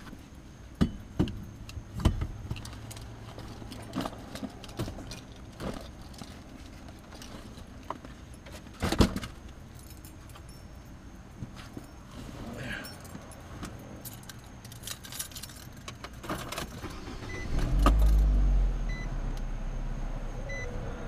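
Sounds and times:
keys jangling and clicking: 2.6s - 7.5s, 9.6s - 11.0s, 12.7s - 16.8s
car engine starting and running: 15.9s - 21.0s.

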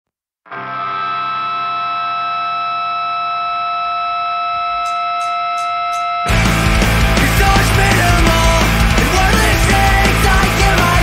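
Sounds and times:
distorted electric guitar chord: 0.5s - 11.0s
drumstick count-in ticks: 4.7s - 6.4s.

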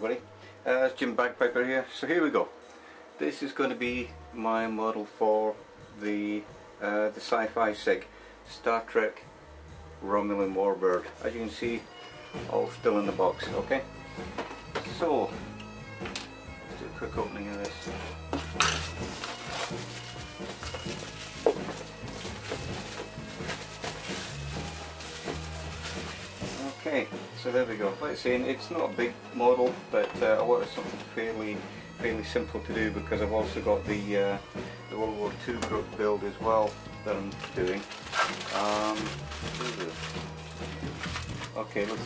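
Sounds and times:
background music with bass notes: 0.0s - 42.0s
plastic bag crackling: 18.7s - 26.8s, 36.6s - 42.0s.

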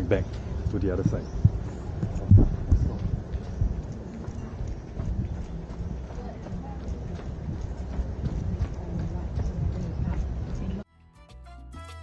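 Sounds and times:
running footsteps on concrete: 0.0s - 10.9s
low rumble: 0.2s - 10.8s.

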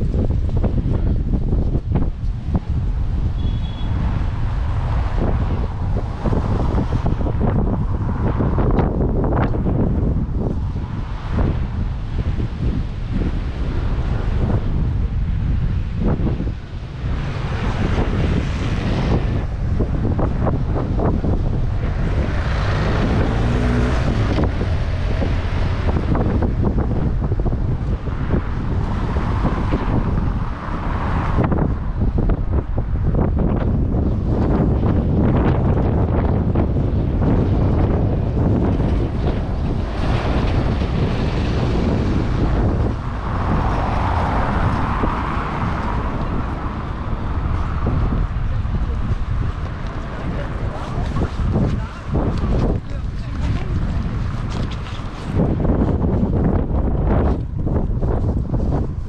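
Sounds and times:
passing road traffic: 0.0s - 59.0s
wind buffeting microphone: 0.0s - 59.0s.

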